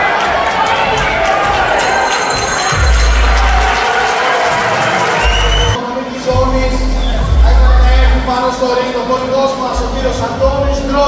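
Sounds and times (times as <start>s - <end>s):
crowd cheering and shouting: 0.0s - 8.6s
loud music with deep bass: 2.7s - 3.9s, 4.5s - 11.0s.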